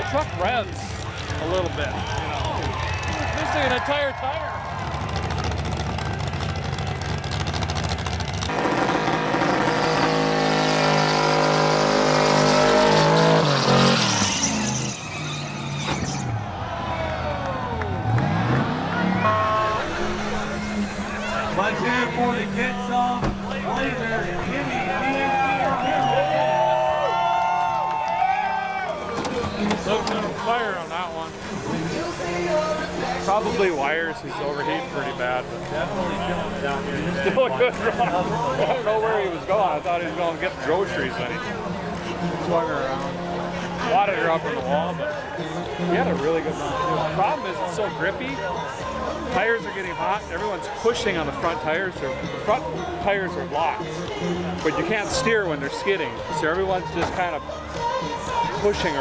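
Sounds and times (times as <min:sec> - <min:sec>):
car engine revving hard: 0:04.8 - 0:16.2, 0:17.9 - 0:24.6
voices: 0:16.7 - 0:59.0
music over loudspeakers: 0:41.0 - 0:59.0.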